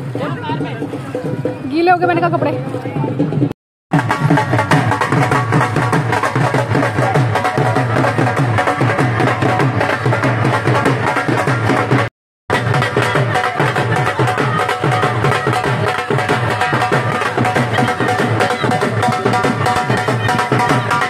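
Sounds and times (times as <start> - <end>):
dhol drums beaten with sticks: 0.0 - 21.0.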